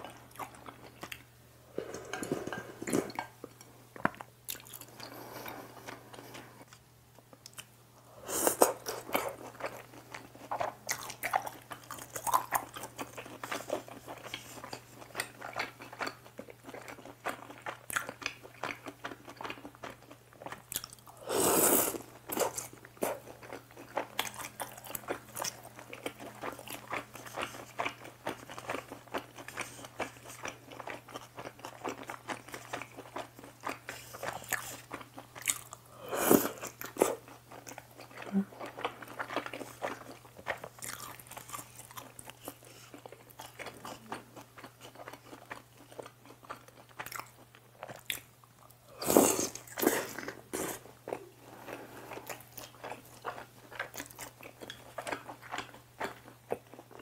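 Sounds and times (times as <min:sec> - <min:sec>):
chewing and biting food: 0:08.6 - 0:21.2, 0:22.2 - 0:35.8, 0:36.5 - 0:57.0.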